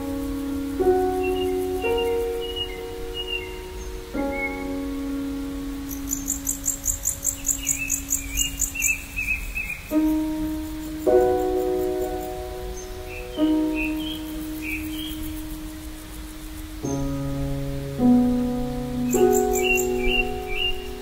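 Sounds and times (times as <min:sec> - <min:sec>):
birds chirping: 0:00.0 - 0:21.0
soft keyboard chords: 0:00.0 - 0:21.0
high pulsing insect-like trill: 0:05.9 - 0:09.3, 0:09.9 - 0:21.0.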